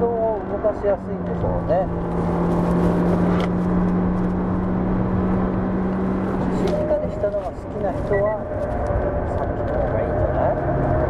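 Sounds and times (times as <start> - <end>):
car engine at speed: 0.0 - 11.0
tyre and road noise: 0.0 - 11.0.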